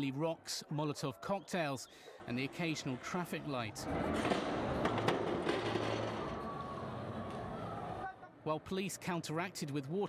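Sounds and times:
crowd and street noise: 0.0 - 9.8.

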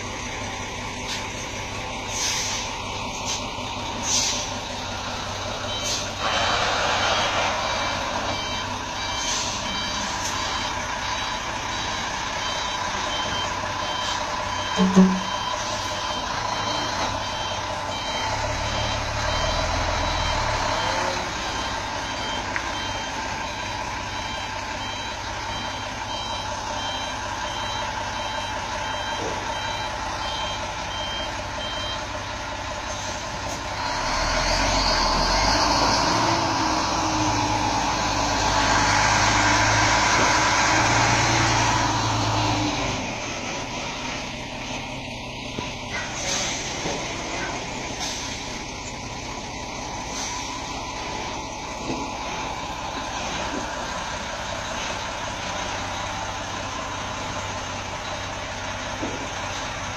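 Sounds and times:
diesel engine running: 0.0 - 59.9
truck reversing alarm beeps: 0.2 - 59.9.

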